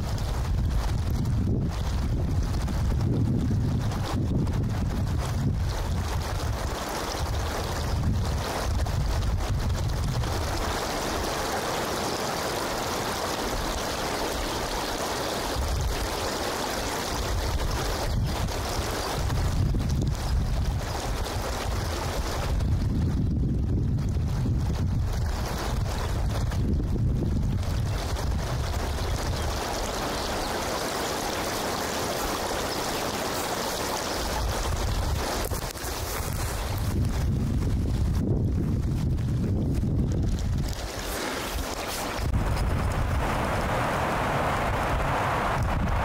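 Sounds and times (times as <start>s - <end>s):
wind buffeting microphone: 0.0s - 11.4s, 17.1s - 30.8s, 31.4s - 46.0s
wind rushing through trees: 0.0s - 46.0s.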